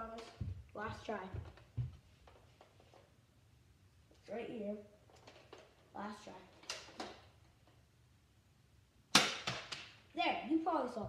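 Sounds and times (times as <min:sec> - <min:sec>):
toy gun pop: 0:09.1 - 0:09.9.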